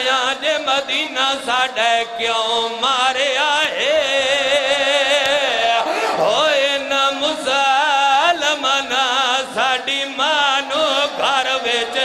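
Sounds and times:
man chanting a mourning lament: 0.0s - 12.0s.

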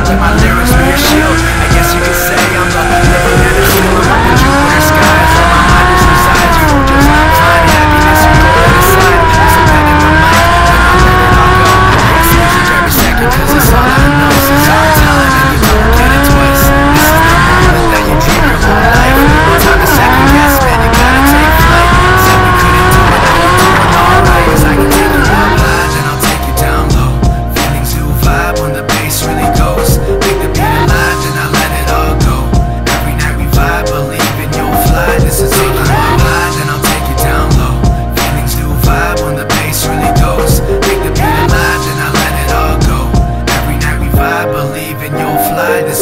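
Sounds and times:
car engine revving hard: 0.0s - 26.9s
background music: 0.0s - 46.0s.

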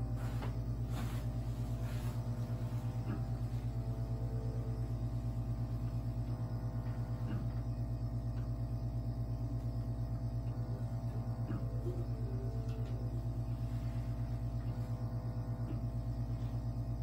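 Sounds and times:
vacuum machine pulsing hum: 0.0s - 17.0s.

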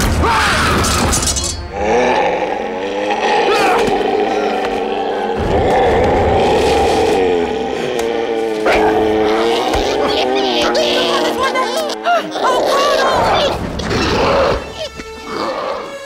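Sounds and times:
dramatic film score: 0.0s - 16.0s
creature growls: 1.7s - 16.0s.

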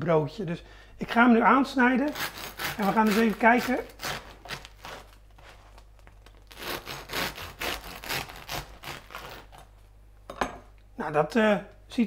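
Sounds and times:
knife sawing through bread: 2.0s - 5.6s, 6.5s - 9.6s.

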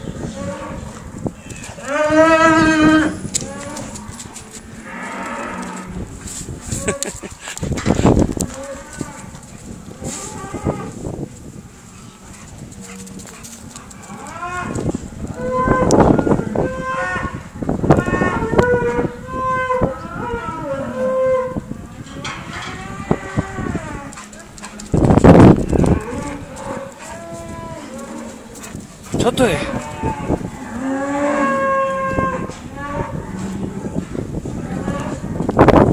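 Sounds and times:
cattle mooing: 0.0s - 4.1s, 4.7s - 5.9s, 12.8s - 21.6s, 22.2s - 24.1s, 25.6s - 28.4s, 29.2s - 34.0s, 34.6s - 35.5s.

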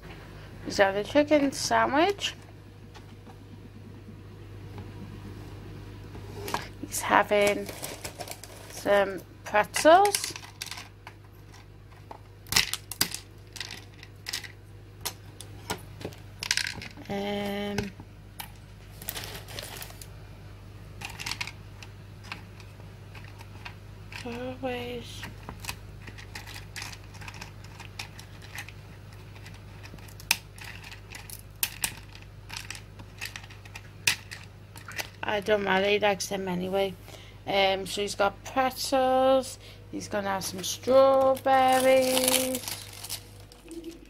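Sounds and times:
pretzel sticks clattering in plastic box: 7.4s - 8.9s, 9.8s - 10.9s, 18.4s - 20.1s, 21.0s - 21.6s, 25.6s - 35.2s, 41.0s - 44.0s.

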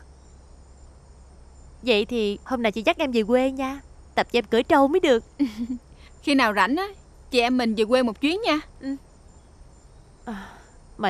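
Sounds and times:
insects chirring: 0.0s - 11.0s
low background hum: 0.0s - 11.0s
woman speaking: 1.9s - 9.0s, 10.3s - 10.6s.

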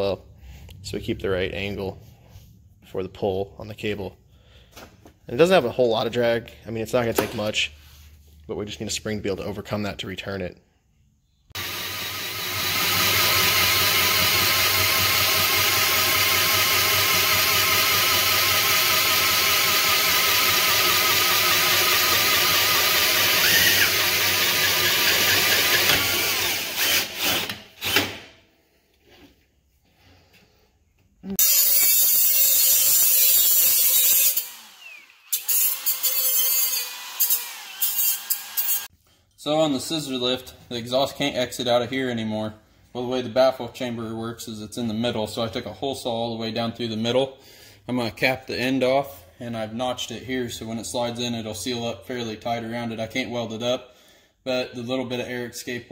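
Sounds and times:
angle grinder grinding metal: 11.6s - 28.0s, 31.4s - 38.9s
drill press cutting steel: 11.6s - 28.2s, 31.4s - 38.9s.

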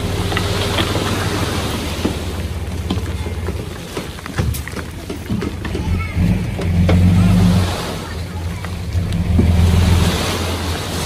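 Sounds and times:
soil and stones tumbling: 0.0s - 10.1s
diesel engine revving: 0.0s - 11.0s.

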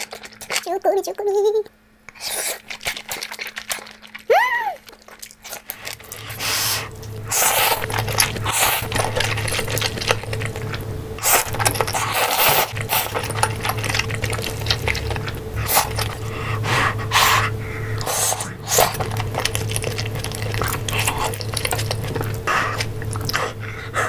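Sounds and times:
chewing and slurping: 0.0s - 0.9s, 2.1s - 24.0s
low electrical hum: 0.0s - 24.0s.

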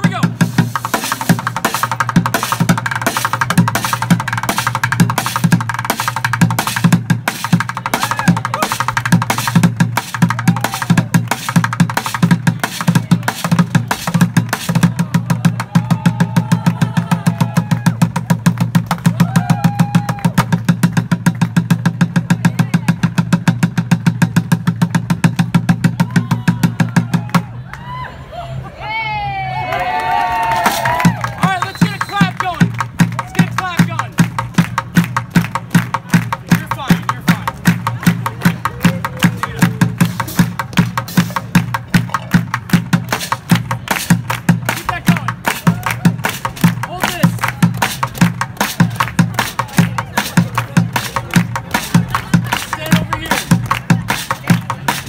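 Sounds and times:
bucket drumming: 0.0s - 27.5s, 30.6s - 55.0s
voices shouting and whooping: 8.0s - 8.8s, 19.1s - 20.4s, 26.0s - 32.2s.

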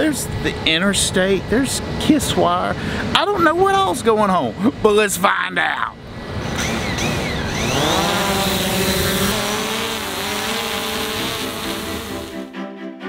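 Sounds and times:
drone propellers whining: 5.9s - 12.5s
music: 11.6s - 13.0s.

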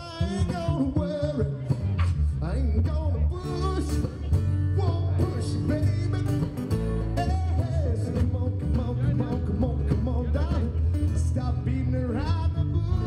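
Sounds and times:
acoustic guitars and banjo: 0.0s - 13.0s
man singing: 0.0s - 13.0s.

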